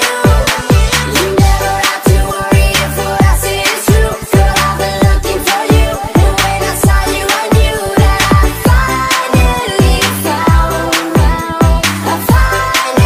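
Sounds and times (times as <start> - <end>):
pop song with steady beat: 0.0 - 13.0.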